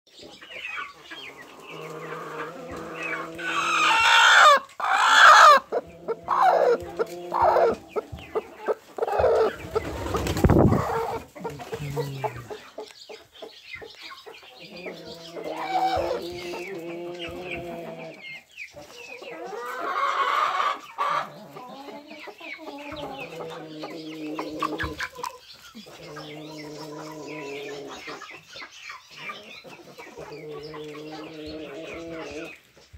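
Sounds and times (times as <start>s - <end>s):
chickens clucking and squawking: 0.1s - 32.9s.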